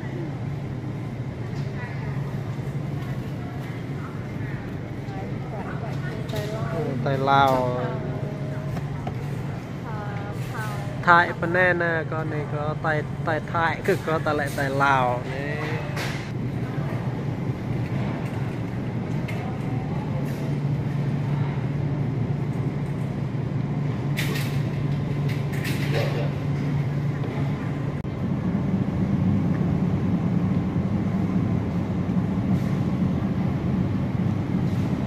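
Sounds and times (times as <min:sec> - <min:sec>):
refrigeration equipment humming: 0:00.0 - 0:35.0.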